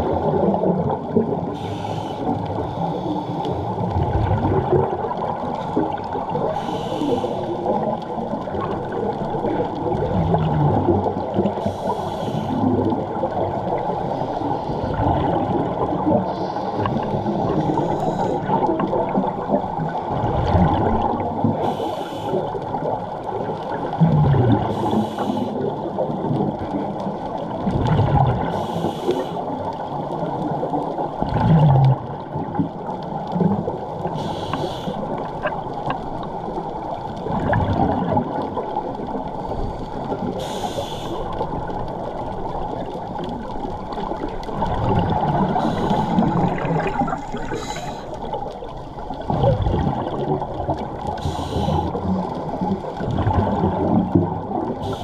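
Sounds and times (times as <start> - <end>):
bubbles gurgling: 0.0 - 28.8, 29.5 - 55.0
muffled underwater rumble: 0.0 - 55.0
scuba regulator hiss: 1.6 - 2.8, 6.6 - 7.6, 11.6 - 12.7, 17.6 - 18.4, 21.6 - 22.5, 24.7 - 25.6, 28.5 - 29.4, 34.2 - 35.0, 40.4 - 41.4, 45.6 - 46.5, 47.5 - 48.2, 51.2 - 52.0.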